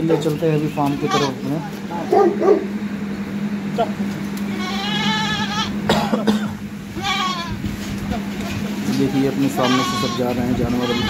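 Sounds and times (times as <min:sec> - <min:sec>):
goats bleating: 0:00.1 - 0:01.7, 0:04.4 - 0:06.0, 0:06.8 - 0:07.8, 0:08.8 - 0:11.0.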